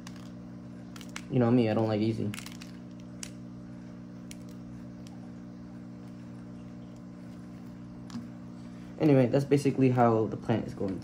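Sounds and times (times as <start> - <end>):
pebbles clicking into plastic cup: 0.0 - 1.5
steady low hum: 0.0 - 11.0.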